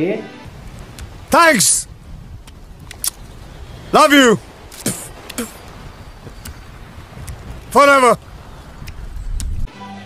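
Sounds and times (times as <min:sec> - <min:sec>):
faint clicks: 0:02.4 - 0:03.3, 0:04.7 - 0:06.6, 0:07.2 - 0:07.5, 0:08.8 - 0:09.6.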